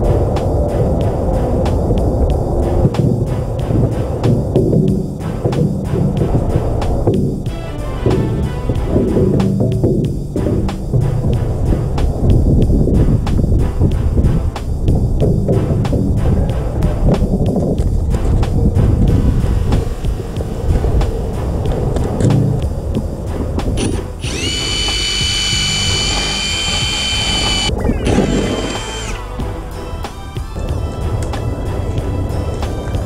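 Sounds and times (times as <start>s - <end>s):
background music with beat: 0.0s - 33.0s
cordless drill whining: 23.8s - 29.3s.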